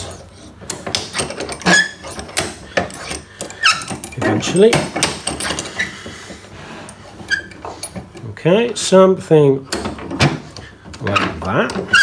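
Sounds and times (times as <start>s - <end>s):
vice screw scraping rattle: 0.0s - 6.1s.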